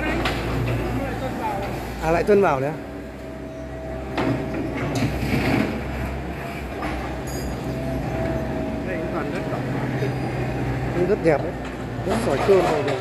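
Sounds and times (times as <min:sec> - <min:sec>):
excavator diesel engine running: 0:00.0 - 0:13.0
soil and rubble rushing: 0:04.3 - 0:08.7.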